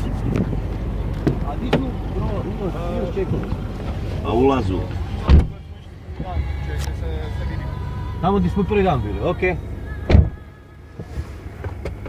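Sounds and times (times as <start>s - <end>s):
low steady cabin hum: 0.0s - 12.0s
car door shutting: 0.3s - 2.0s, 5.2s - 5.6s, 10.0s - 12.0s.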